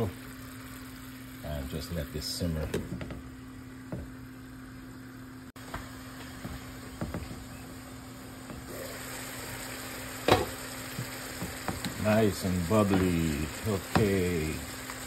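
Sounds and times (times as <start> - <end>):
sauce simmering and sizzling: 0.1 - 1.9, 3.4 - 15.0.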